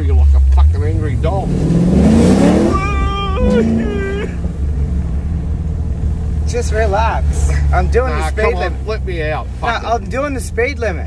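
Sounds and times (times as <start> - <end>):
deep cabin drone: 0.0 - 6.4
car engine accelerating: 0.0 - 11.0
man wailing: 2.4 - 4.5.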